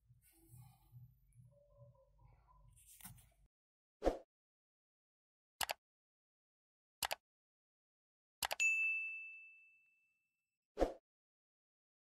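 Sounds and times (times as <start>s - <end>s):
mouse clicks: 5.6s - 5.8s
bright ding: 8.6s - 10.0s.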